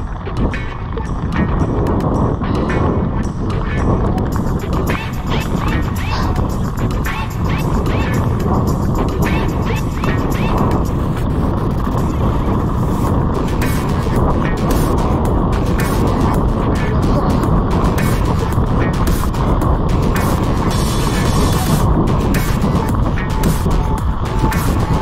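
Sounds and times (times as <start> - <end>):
bike rolling over gravel: 0.0 - 25.0
music with a beat: 0.0 - 25.0
wind on microphone: 0.0 - 25.0.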